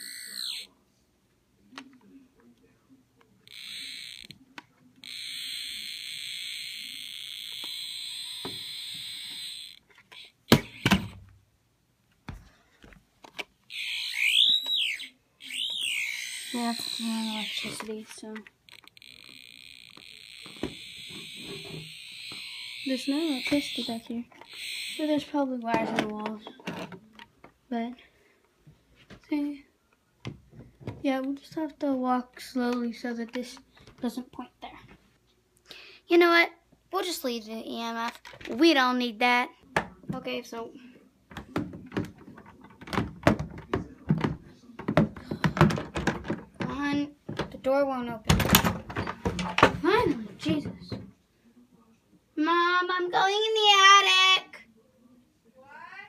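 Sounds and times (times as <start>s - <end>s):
high-pitched electronic buzz: 13.7s - 17.7s, 18.7s - 25.1s
door rattling and knocking in frame: 48.2s - 51.1s.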